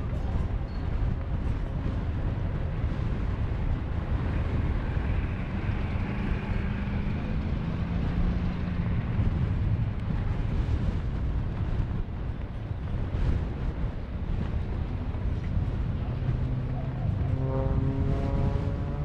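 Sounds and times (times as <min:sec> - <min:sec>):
propeller plane engine drone: 0:00.0 - 0:19.0.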